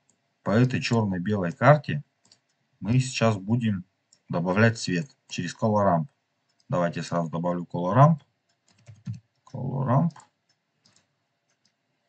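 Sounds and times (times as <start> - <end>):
computer mouse clicks: 2.2 - 2.7, 6.1 - 6.7, 8.4 - 11.9.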